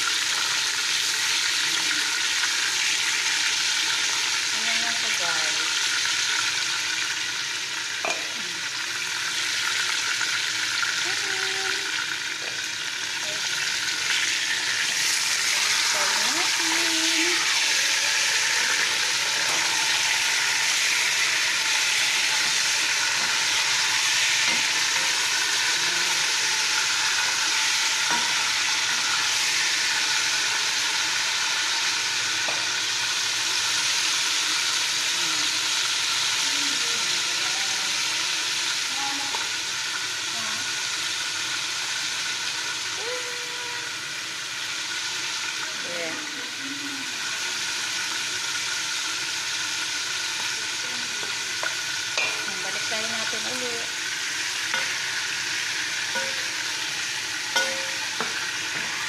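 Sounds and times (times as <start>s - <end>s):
chicken sizzling in hot oil: 0.0s - 59.0s.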